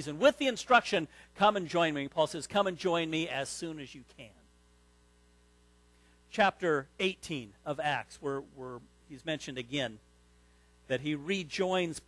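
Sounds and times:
faint electrical mains hum: 0.0s - 12.0s.

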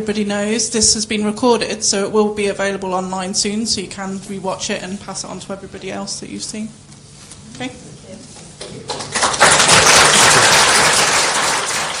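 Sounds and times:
audience applauding: 8.8s - 12.0s.

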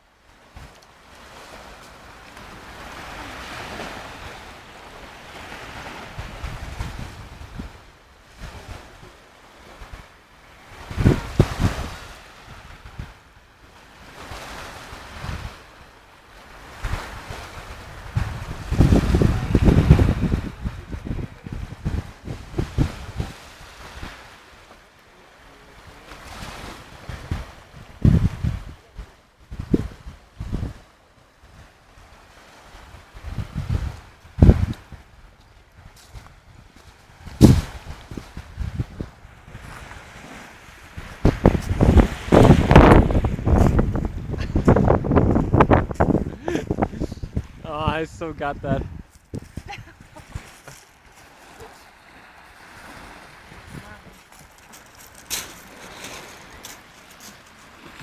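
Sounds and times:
small waves on shingle: 0.2s - 29.1s, 29.7s - 58.0s
wind gusting over microphone: 0.6s - 9.1s, 10.7s - 13.2s, 14.2s - 15.7s, 16.6s - 24.3s, 26.2s - 31.7s, 32.7s - 58.0s.

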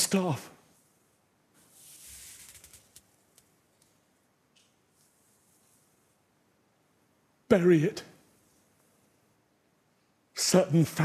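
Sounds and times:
faint costume rustle: 0.8s - 3.4s, 4.8s - 6.2s.

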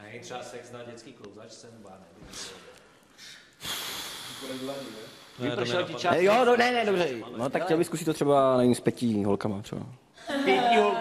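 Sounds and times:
man breathing out: 3.2s - 5.4s.

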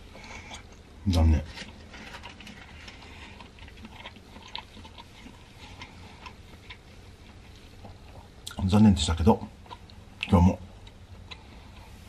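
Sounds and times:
person chewing food: 0.0s - 8.6s, 9.6s - 12.0s.

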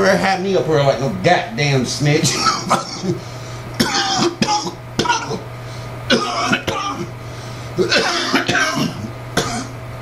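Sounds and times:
steady low hum: 0.0s - 10.0s
man coughing and clearing throat: 2.2s - 5.5s, 6.1s - 7.2s, 7.8s - 9.8s.

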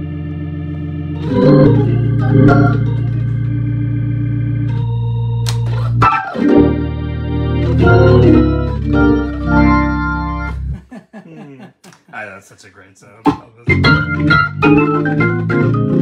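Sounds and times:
deep bass: 0.0s - 6.0s
organ playing held chords: 0.0s - 10.8s, 13.7s - 16.0s.

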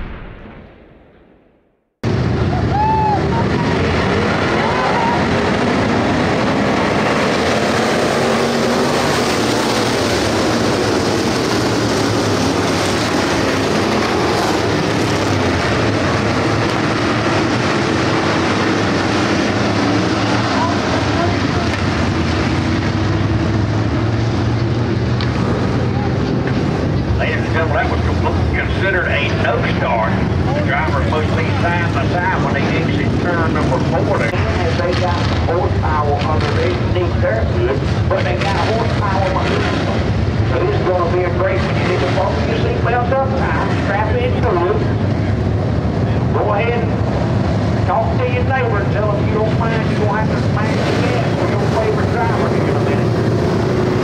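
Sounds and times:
many car engines droning: 2.0s - 54.0s.

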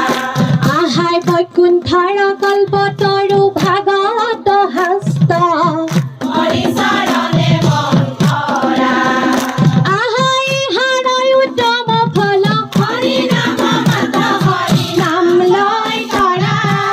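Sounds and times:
hand-clapping: 0.0s - 1.6s, 3.6s - 9.8s, 12.5s - 16.9s
women singing in unison: 0.0s - 16.9s.

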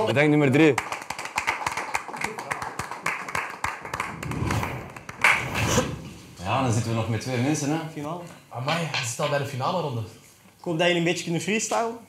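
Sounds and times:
small group clapping: 0.0s - 5.5s.

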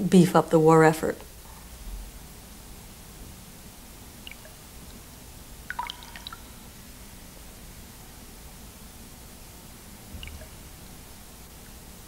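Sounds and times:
low steady hiss and hum: 0.0s - 12.0s.

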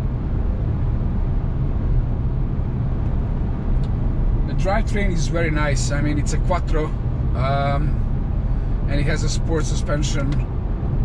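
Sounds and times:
car cabin road drone: 0.0s - 11.0s.

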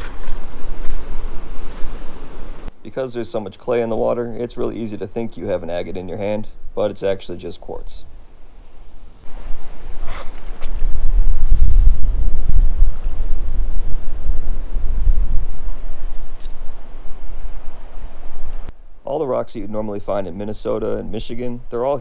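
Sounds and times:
wind buffeting microphone: 0.0s - 2.7s, 9.2s - 18.8s.

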